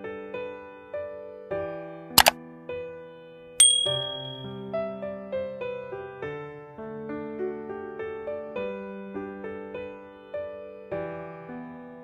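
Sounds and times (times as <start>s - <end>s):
bright bell ding: 3.6s - 4.6s
piano music: 3.6s - 12.0s.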